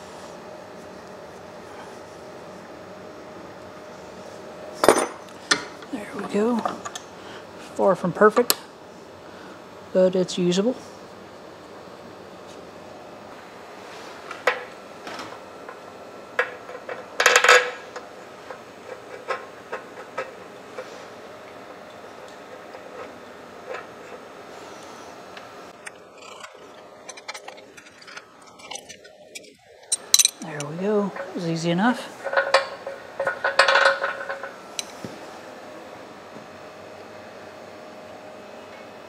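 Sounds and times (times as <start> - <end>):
metal parts and tools clinking: 25.8 - 30.8
metallic clatter: 25.8 - 31.4.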